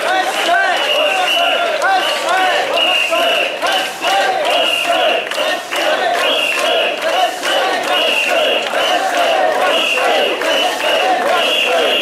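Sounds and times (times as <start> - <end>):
crowd shouting a rhythmic chant: 0.0 - 12.0.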